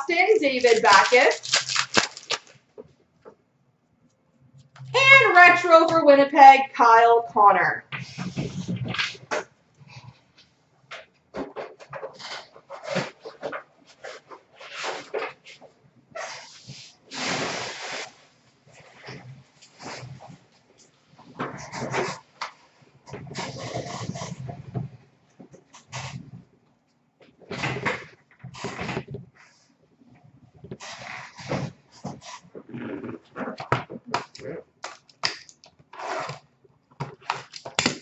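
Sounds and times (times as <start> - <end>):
trading cards rustling: 0.1 - 2.6.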